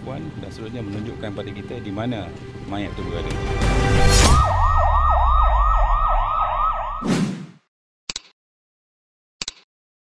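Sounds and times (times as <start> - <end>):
loud rush of noise: 4.0 - 6.9
siren wailing in fast yelp: 4.2 - 7.0.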